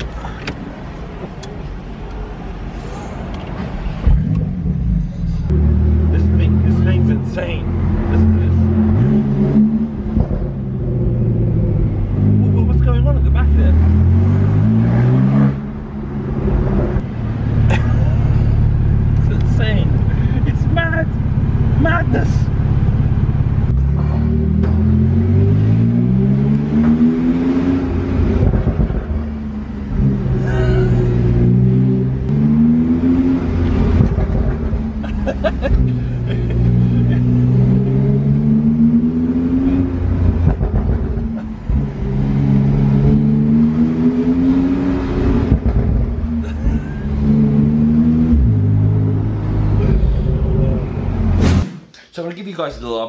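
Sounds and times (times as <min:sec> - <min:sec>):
sports car engine revving: 0:05.4 - 0:17.4, 0:22.5 - 0:51.5.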